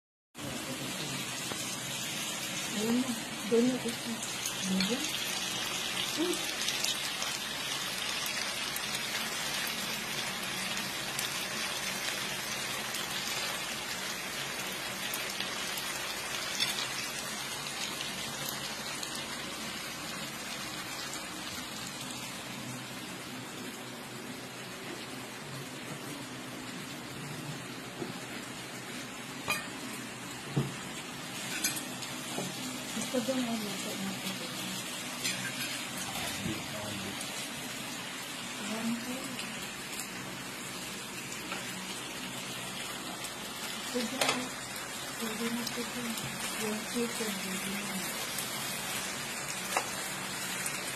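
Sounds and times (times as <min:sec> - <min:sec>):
meat sizzling in a grill pan: 0:00.4 - 0:50.9.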